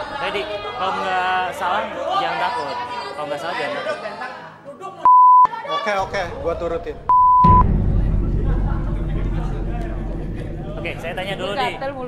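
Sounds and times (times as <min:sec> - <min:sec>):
people talking: 0:00.0 - 0:12.0
high-pitched censor bleep: 0:05.1 - 0:05.5, 0:07.1 - 0:07.6.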